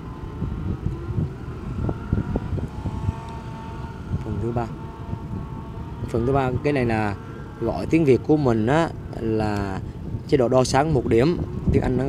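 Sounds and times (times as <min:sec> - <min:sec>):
faint steady whine: 0:00.0 - 0:12.0
outdoor background rumble: 0:00.0 - 0:12.0
wind buffeting microphone: 0:00.0 - 0:12.0.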